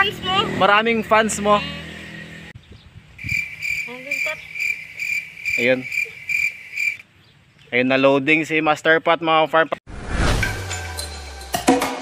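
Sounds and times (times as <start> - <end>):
insect pulsing buzz: 3.2 - 7.0.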